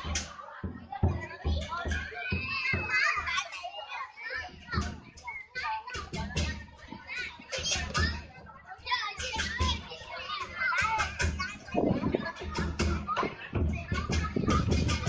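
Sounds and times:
drum beats: 0.0 - 3.5, 4.3 - 15.0
children shouting excitedly: 0.0 - 15.0.

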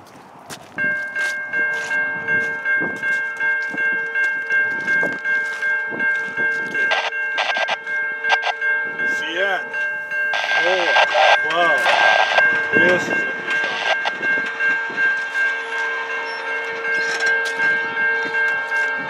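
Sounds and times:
crossing warning bell ringing: 0.7 - 19.0
train rushing: 10.3 - 19.0.

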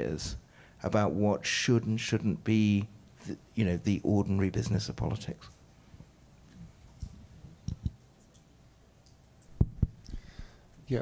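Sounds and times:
microphone handling thumps: 9.6 - 10.3.

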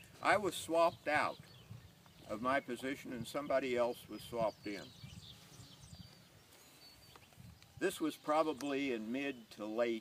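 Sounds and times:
high bird chirps: 3.9 - 7.8.

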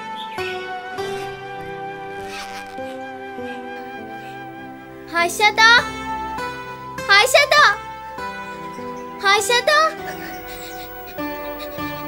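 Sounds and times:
music of long held notes: 0.0 - 12.0
backpack zipper pulled: 2.3 - 2.8.

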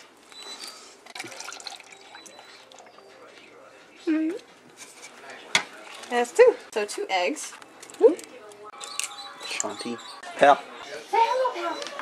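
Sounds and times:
faint steady pouring: 1.1 - 2.9.

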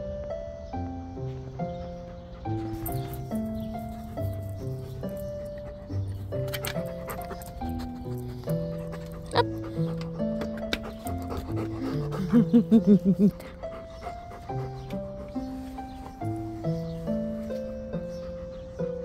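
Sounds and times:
background music: 0.0 - 19.0
dog panting: 1.6 - 19.0
person laughing: 11.8 - 13.6.

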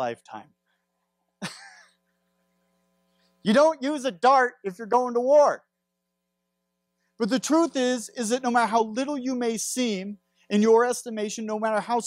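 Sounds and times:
man clearing throat: 1.4 - 2.0.

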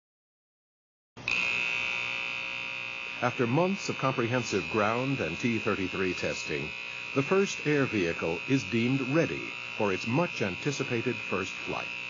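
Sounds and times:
high-pitched machine whine: 1.2 - 12.0.

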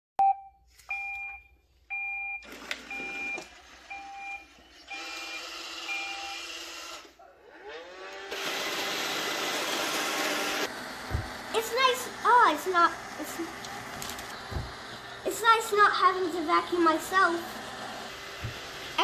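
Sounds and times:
robot vacuum beeps: 0.2 - 6.5
robot vacuum motor whirring: 2.6 - 19.0
vacuum running with whine: 7.6 - 19.0.

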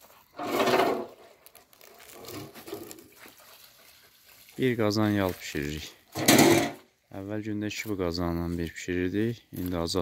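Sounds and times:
rubber trough scraping on dirt: 0.0 - 1.3.

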